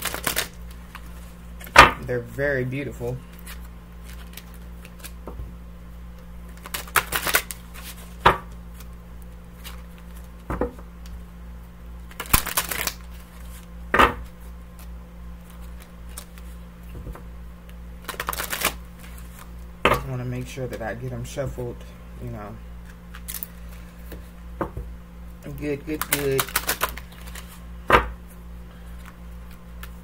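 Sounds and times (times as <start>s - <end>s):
cards being shuffled: 0.0s - 1.8s, 3.2s - 5.3s, 6.4s - 10.5s, 12.1s - 13.7s, 14.3s - 19.6s, 22.8s - 24.3s, 25.5s - 27.6s, 28.9s - 30.0s.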